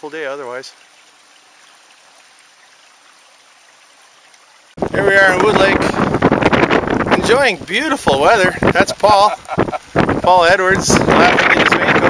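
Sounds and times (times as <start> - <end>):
water trickling in creek: 0.0 - 12.0
wind on microphone: 4.8 - 12.0.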